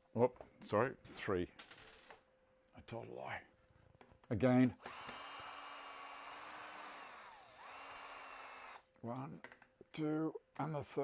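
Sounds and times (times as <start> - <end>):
cordless drill running: 4.8 - 8.8.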